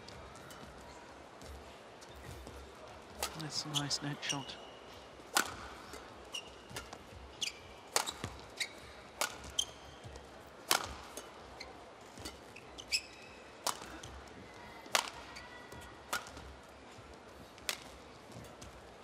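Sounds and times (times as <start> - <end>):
shoes squeaking on court: 0.0 - 18.9
racket striking shuttlecock: 3.1 - 3.4, 5.3 - 7.1, 7.9 - 9.8, 10.6 - 11.4, 13.6 - 14.2, 14.8 - 15.3, 16.1 - 16.5.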